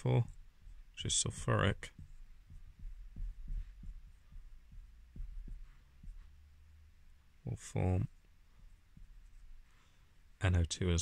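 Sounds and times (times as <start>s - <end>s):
marker tapping on whiteboard: 0.0s - 6.8s, 8.6s - 9.6s
faint low hum: 0.0s - 11.0s.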